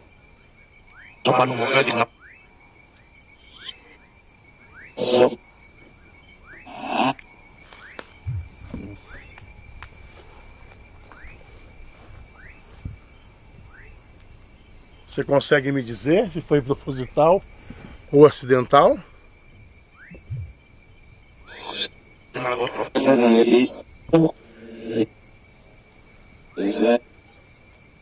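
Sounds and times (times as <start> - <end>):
high insect trill: 0.0 - 28.0
garbled radio voice fragments: 1.2 - 2.1, 3.4 - 3.8, 5.0 - 5.4, 6.7 - 7.2, 21.5 - 25.1, 26.6 - 27.0
short rising chirp: 3.4 - 4.0.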